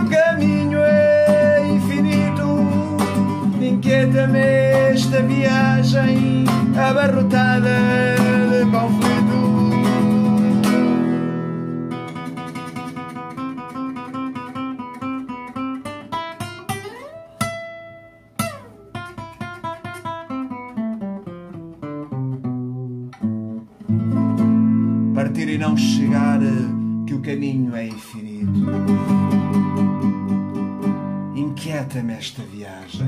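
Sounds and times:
acoustic guitar playing: 0:00.0 - 0:33.0.

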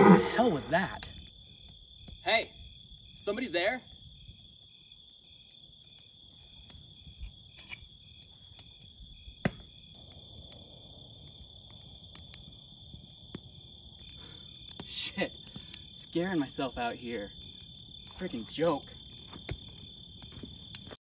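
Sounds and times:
campfire crackling: 0:00.0 - 0:21.0
crickets chirping: 0:00.0 - 0:21.0.

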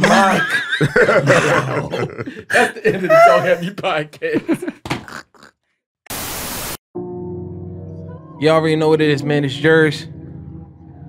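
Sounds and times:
person laughing: 0:00.0 - 0:05.6
white-noise static burst: 0:06.1 - 0:06.8.

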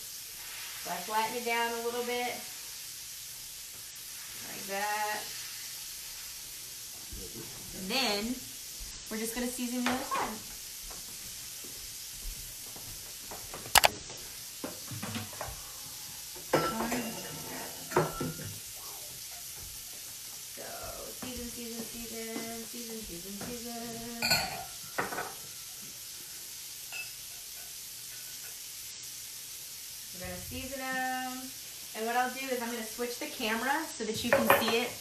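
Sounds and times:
patties sizzling in a frying pan: 0:00.0 - 0:35.0.

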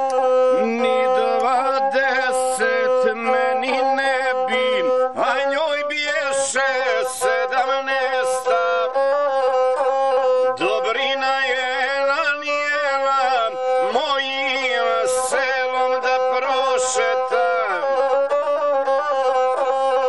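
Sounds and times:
bowed fiddle melody: 0:00.0 - 0:20.0.

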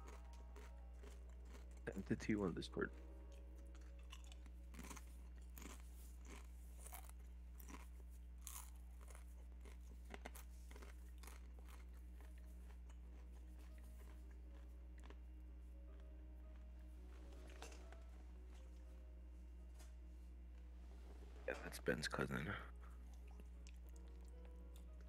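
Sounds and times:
low steady hum: 0:00.0 - 0:25.0.

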